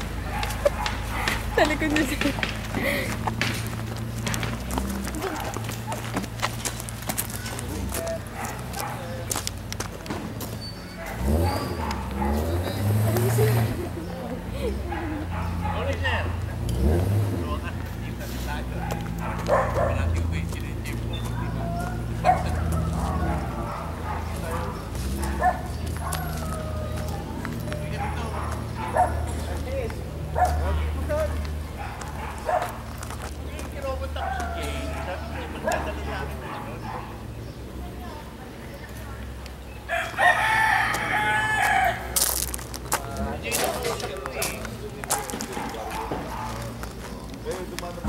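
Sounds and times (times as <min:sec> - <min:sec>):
low engine hum: 0:00.0 - 0:39.9
indistinct voices talking: 0:00.0 - 0:48.0
dog barking: 0:00.2 - 0:01.7, 0:07.4 - 0:09.3, 0:10.9 - 0:13.0, 0:14.9 - 0:16.4, 0:18.7 - 0:20.3, 0:21.1 - 0:29.6, 0:30.3 - 0:33.0, 0:34.1 - 0:37.4, 0:45.0 - 0:46.8.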